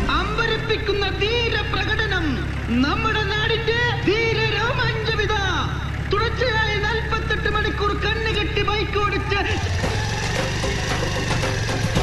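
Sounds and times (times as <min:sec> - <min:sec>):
engine chugging: 0:00.0 - 0:12.0.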